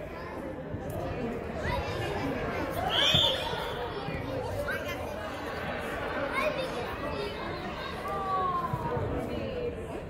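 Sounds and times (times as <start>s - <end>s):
indistinct chatter echoing in hall: 0.0s - 10.0s.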